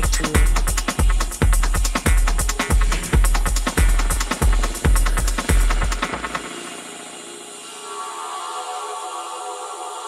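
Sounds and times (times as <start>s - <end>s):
electronic dance music: 0.0s - 10.0s.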